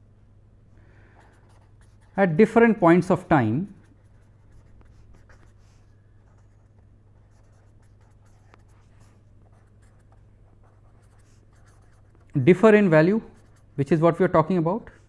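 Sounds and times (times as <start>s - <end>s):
steady low hum: 0.0s - 15.0s
pen scratching on paper: 1.2s - 2.3s, 3.8s - 12.3s, 13.2s - 13.8s.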